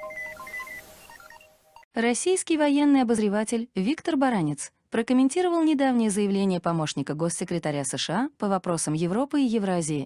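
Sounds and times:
electronic jingle with beeping notes: 0.0s - 1.9s.

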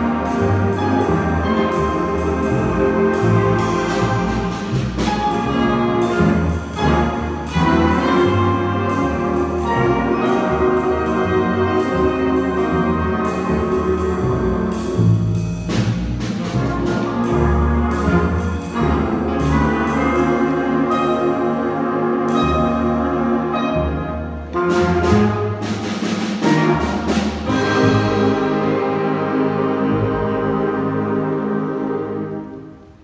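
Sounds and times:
jazz big band playing: 0.0s - 33.0s.

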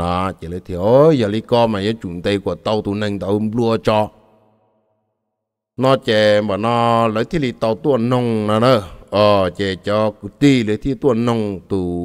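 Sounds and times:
man chanting narration: 0.0s - 4.2s, 5.8s - 12.0s.

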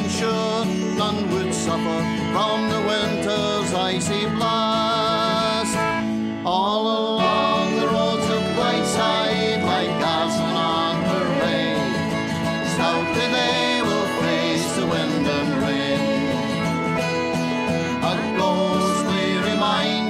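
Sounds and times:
acoustic guitar: 0.0s - 20.0s
banjo playing: 7.2s - 20.0s.

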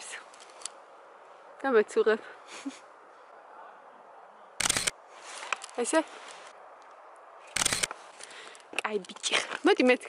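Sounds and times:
faint outdoor background: 0.0s - 10.0s
camera shutter click: 4.6s - 5.0s, 7.5s - 8.0s.

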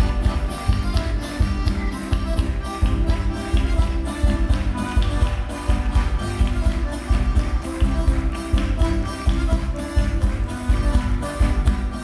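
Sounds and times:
feet tapping and stamping on stage: 0.0s - 12.0s
live folk band music: 0.0s - 12.0s.

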